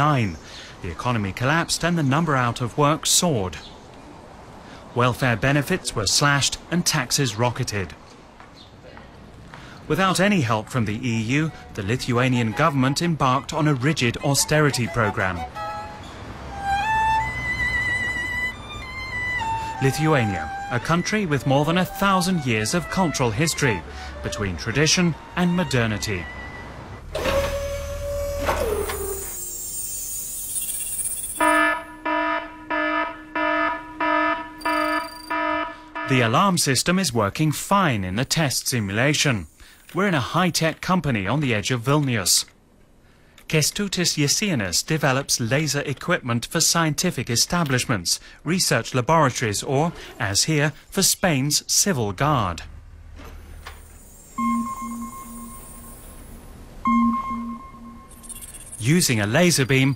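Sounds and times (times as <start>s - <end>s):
electronic alarm beeping: 29.4s - 36.2s, 53.9s - 59.9s
high hiss: 53.7s - 54.4s
low pulsing tone: 54.4s - 56.2s, 56.9s - 58.8s.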